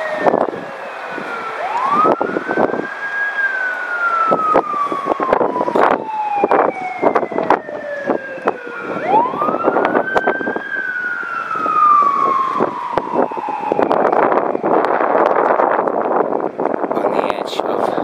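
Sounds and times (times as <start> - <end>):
siren wailing: 0.0 - 16.9
wind on microphone: 0.0 - 18.0.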